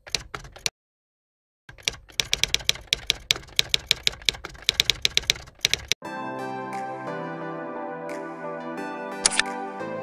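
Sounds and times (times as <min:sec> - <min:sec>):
typewriter key clicks: 0:00.0 - 0:00.7, 0:01.7 - 0:06.0, 0:09.3 - 0:09.5.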